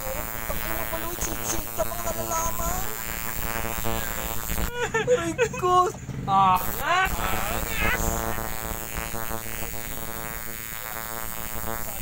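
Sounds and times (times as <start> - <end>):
tattoo machine buzzing: 0.0 - 4.9, 6.5 - 12.0.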